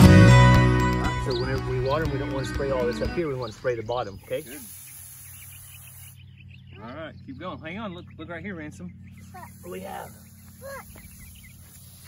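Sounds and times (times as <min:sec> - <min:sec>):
hose spray nozzle hissing: 0:04.1 - 0:06.2, 0:09.2 - 0:12.0.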